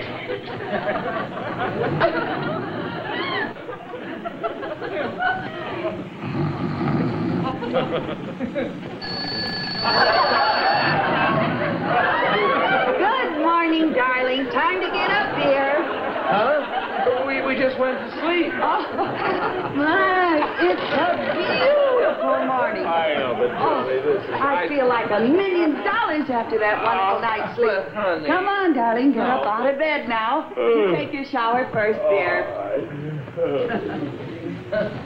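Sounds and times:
low murmuring: 0.0 - 9.1, 30.5 - 35.0
voices talking: 7.4 - 35.0
high steady ringing: 9.0 - 12.0.

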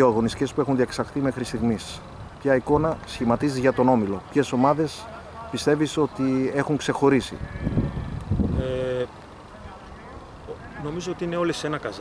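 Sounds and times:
faint steady background noise: 0.0 - 12.0
man saying eh: 8.6 - 9.1.

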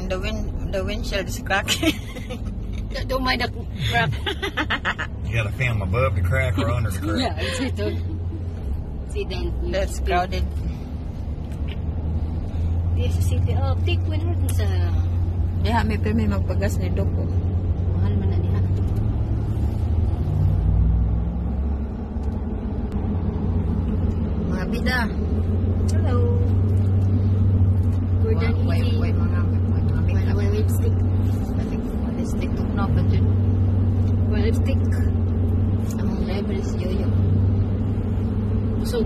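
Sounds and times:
car road and engine rumble: 0.0 - 39.0.

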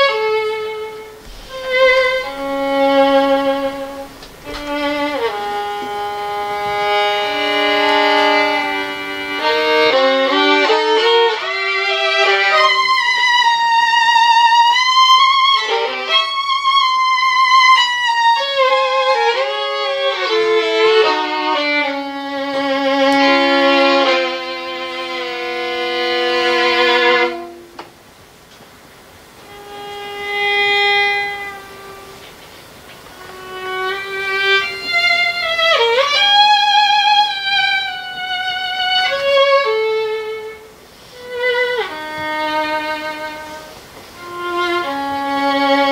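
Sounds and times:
solo violin ballad: 0.0 - 45.9.

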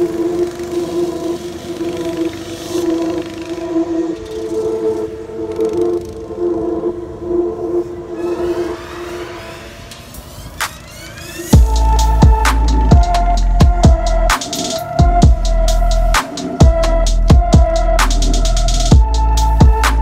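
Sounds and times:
go-kart engines running: 0.0 - 6.4.

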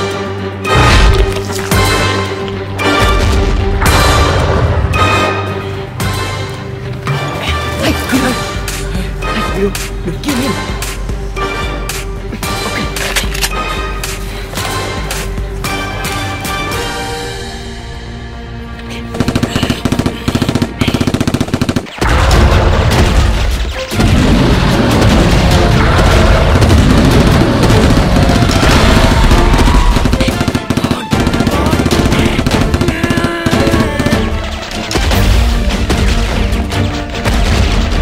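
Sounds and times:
dramatic action music: 0.0 - 38.0
automatic gunfire: 19.2 - 22.2, 24.9 - 34.4.

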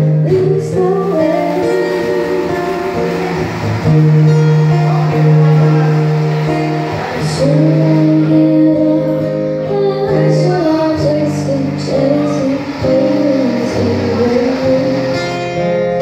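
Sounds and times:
acoustic guitar: 0.0 - 16.0.

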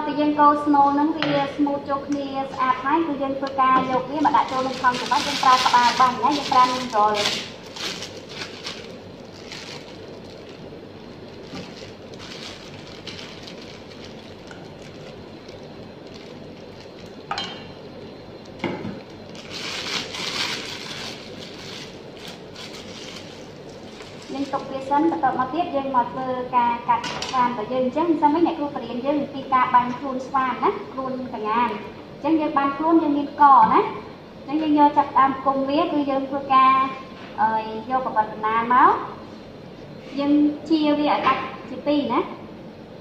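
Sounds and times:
person talking: 0.0 - 7.5, 24.3 - 33.9
plastic piping bag crinkling: 3.5 - 25.6.

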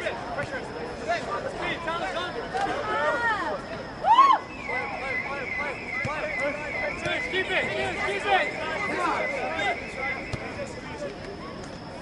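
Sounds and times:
crowd shouting and calling: 0.0 - 11.9
steady high-pitched tone: 0.0 - 12.0.

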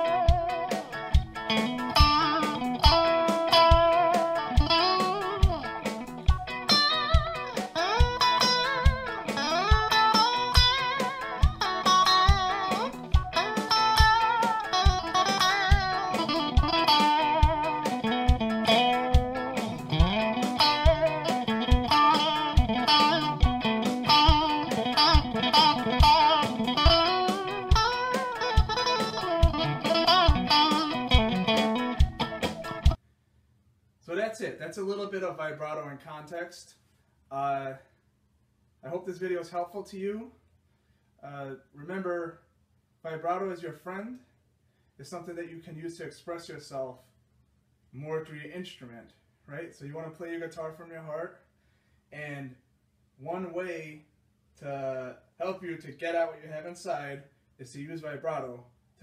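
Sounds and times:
backing track with steady beat: 0.0 - 33.0
electric guitar lead with bends: 0.0 - 33.0.

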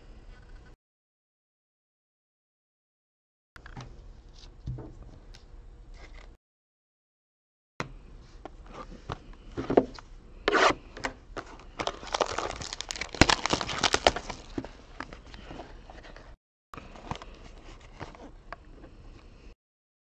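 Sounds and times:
box handling: 11.4 - 16.3
plastic shrink wrap crinkling: 11.8 - 14.7.

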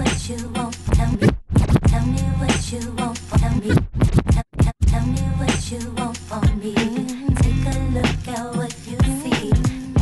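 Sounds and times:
hip-hop beat: 0.0 - 10.0
vinyl scratching: 0.8 - 2.0, 3.3 - 4.4, 6.4 - 10.0.

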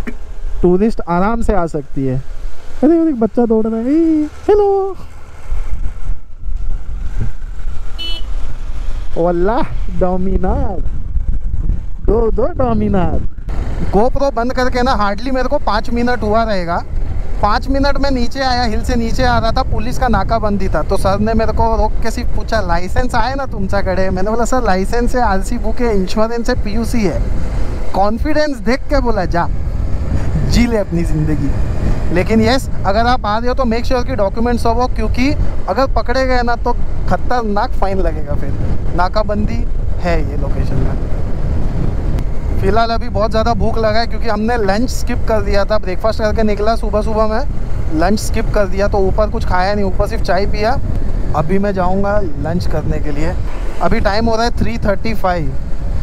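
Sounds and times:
motorcycle engine: 0.0 - 19.6
motorcycle engine rumble: 0.0 - 56.0
wind buffeting microphone: 0.0 - 56.0
man's voice: 2.8 - 5.1.

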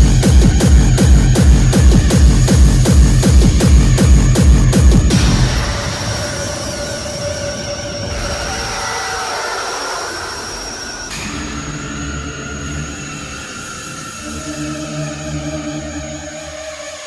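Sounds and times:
pulsing low bass: 0.0 - 8.8
droning industrial music: 0.0 - 17.0.

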